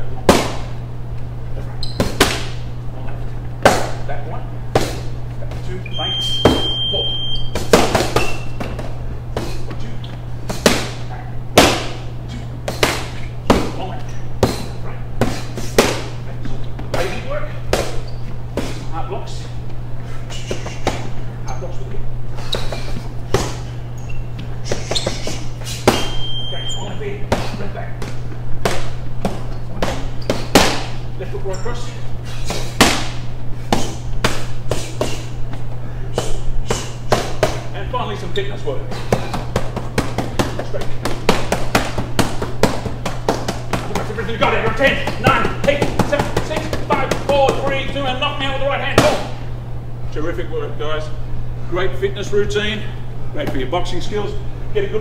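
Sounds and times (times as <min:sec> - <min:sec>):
steady low hum: 0:00.0 - 0:55.0
boxing gloves hitting mitts: 0:00.2 - 0:00.8, 0:02.0 - 0:02.6, 0:03.6 - 0:04.0, 0:04.7 - 0:05.8, 0:07.5 - 0:16.2, 0:16.8 - 0:18.9, 0:20.3 - 0:21.2, 0:22.4 - 0:23.7, 0:24.6 - 0:26.2, 0:27.1 - 0:31.0, 0:32.4 - 0:37.7, 0:38.9 - 0:49.4
gloves slapping focus mitts: 0:10.5 - 0:11.0, 0:12.7 - 0:13.8, 0:39.1 - 0:44.2.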